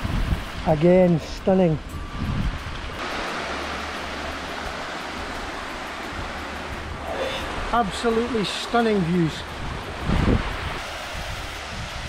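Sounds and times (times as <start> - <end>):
water rushing over rock: 2.9 - 12.0.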